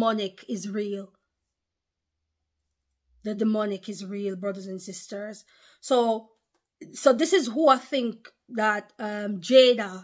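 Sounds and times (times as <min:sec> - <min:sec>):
woman speaking: 0:00.0 - 0:01.2, 0:03.2 - 0:10.0.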